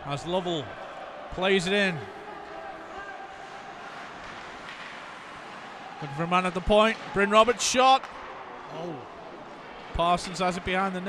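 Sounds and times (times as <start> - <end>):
crowd murmur in arena: 8.5 - 11.0.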